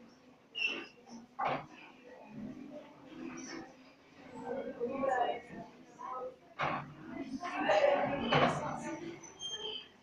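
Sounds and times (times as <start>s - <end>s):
marker squeaking on whiteboard: 0.5s - 1.6s, 8.0s - 10.0s.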